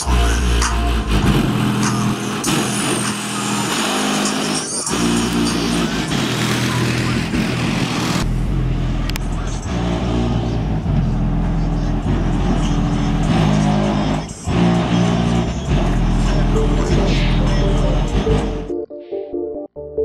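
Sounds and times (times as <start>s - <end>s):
car driving slowly: 0.0s - 18.6s
loud music with heavy bass: 0.0s - 20.0s.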